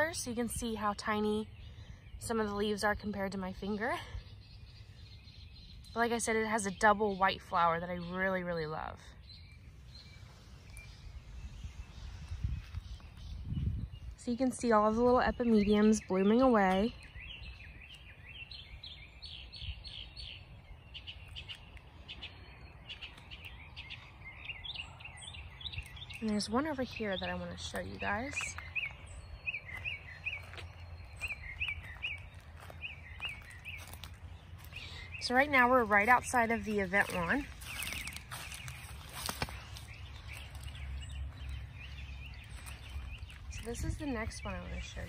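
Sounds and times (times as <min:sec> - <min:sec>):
steady low rumble: 0:00.0 - 0:45.0
songbird whistling: 0:15.2 - 0:34.0.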